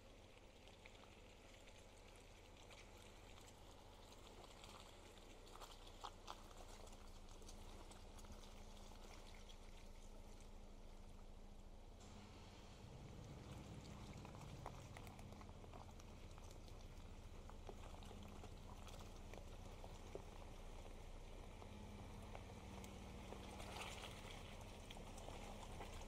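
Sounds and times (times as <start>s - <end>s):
pickup truck engine rumble: 0.0s - 26.0s
tyres splashing in mud: 0.0s - 26.0s.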